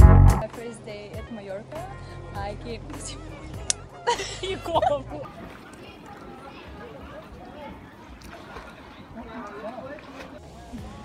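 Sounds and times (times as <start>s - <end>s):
young women laughing and exclaiming: 2.9s - 8.1s.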